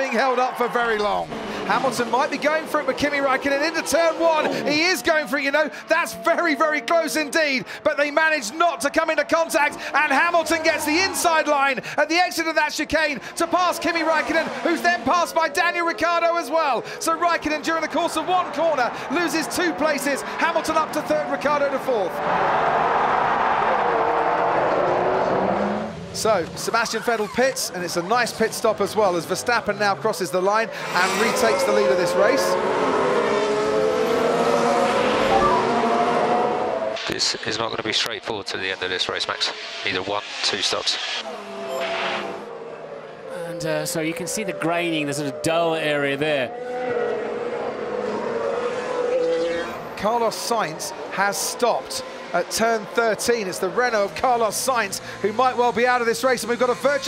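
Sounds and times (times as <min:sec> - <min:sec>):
racing car engines at speed: 0:00.0 - 0:57.0.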